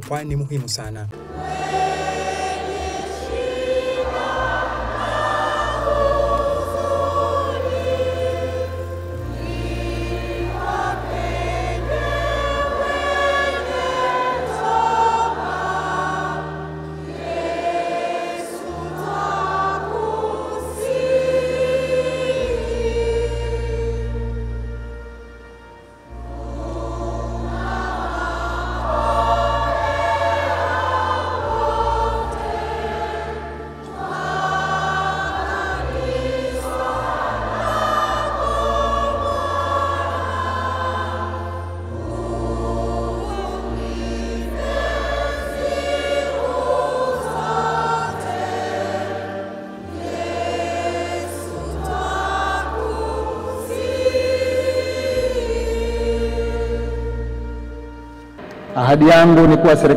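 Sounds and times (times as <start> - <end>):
choir singing long notes: 1.2 - 59.9
sustained bass notes: 55.2 - 59.9.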